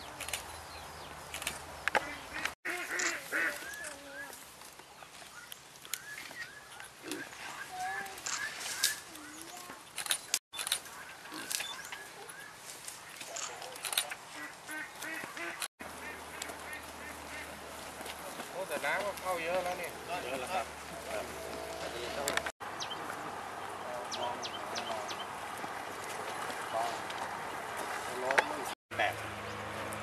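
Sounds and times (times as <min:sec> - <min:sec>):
faint outdoor background: 0:00.0 - 0:30.0
farm animals calling: 0:02.0 - 0:04.4, 0:10.8 - 0:17.9.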